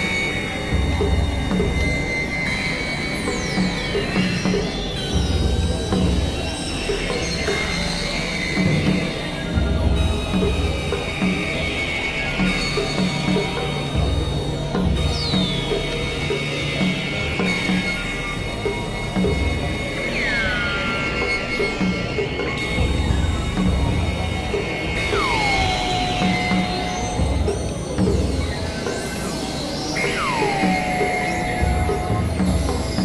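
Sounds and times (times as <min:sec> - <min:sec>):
dark synthesizer drone: 0:00.0 - 0:33.0
high falling synth sweeps: 0:25.0 - 0:29.3, 0:30.0 - 0:32.7.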